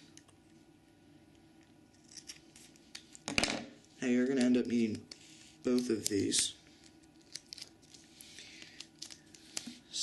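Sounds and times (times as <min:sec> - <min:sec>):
duct tape rustling: 0:05.7 - 0:09.8.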